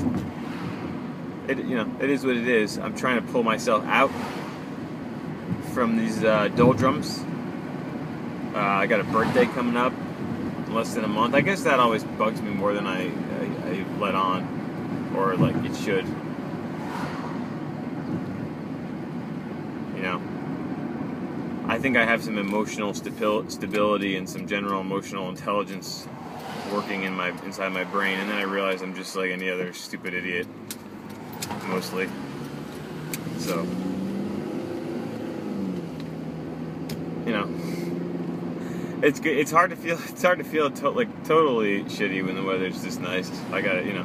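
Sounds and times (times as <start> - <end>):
car road and engine noise: 0.0 - 44.0.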